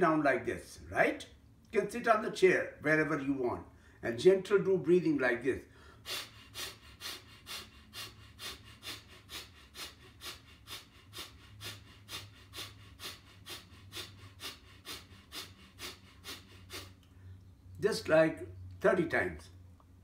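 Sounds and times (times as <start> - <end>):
man exhaling forcefully through nose: 5.7 - 17.0.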